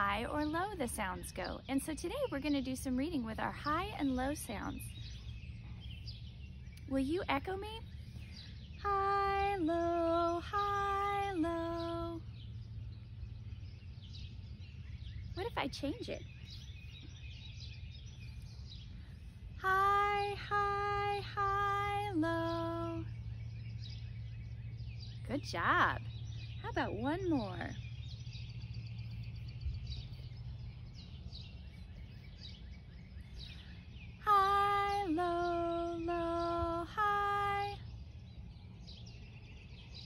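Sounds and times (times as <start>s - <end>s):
faint bird chirps: 0.0s - 40.0s
low background hum: 0.0s - 40.0s
steady low rumble: 0.0s - 40.0s
woman singing: 8.8s - 12.2s, 19.6s - 23.1s, 34.2s - 37.8s.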